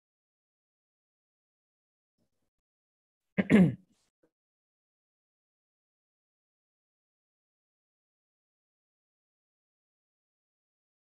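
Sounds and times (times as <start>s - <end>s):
person clearing throat: 3.4s - 3.9s.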